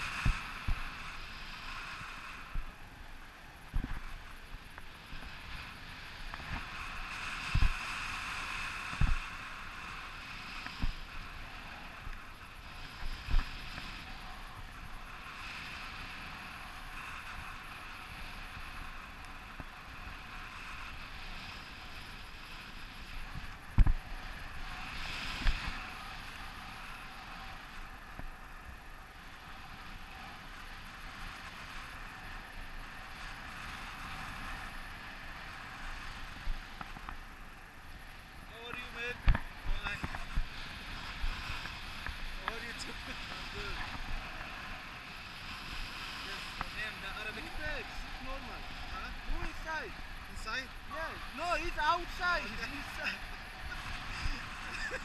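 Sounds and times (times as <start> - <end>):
air rushing over microphone: 0.0 - 27.4.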